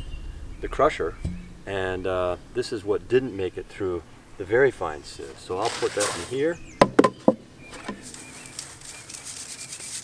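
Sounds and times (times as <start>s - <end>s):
faint birds chirping: 0.0s - 10.0s
sharp knocks: 1.2s - 1.7s, 6.8s - 7.4s.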